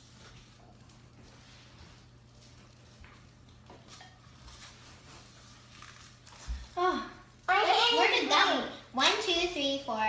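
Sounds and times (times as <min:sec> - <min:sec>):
hands working at a countertop: 0:00.0 - 0:09.9.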